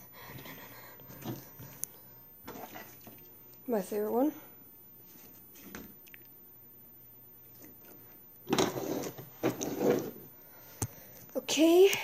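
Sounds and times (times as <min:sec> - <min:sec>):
rustling and scraping objects: 0:00.2 - 0:03.9, 0:05.0 - 0:06.0, 0:07.5 - 0:11.3.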